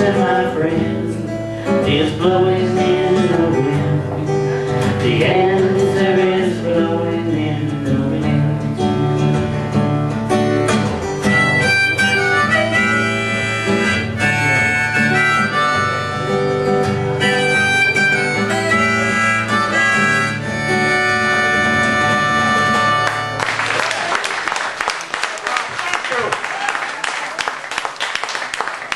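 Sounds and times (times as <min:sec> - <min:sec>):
acoustic guitar strumming: 0:00.0 - 0:23.7
harmonica melody: 0:09.8 - 0:23.8.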